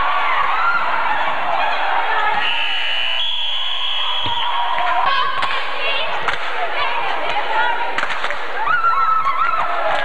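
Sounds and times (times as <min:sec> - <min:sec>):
crowd noise in a gym: 0:00.0 - 0:10.0
referee's whistle blast: 0:02.4 - 0:04.6.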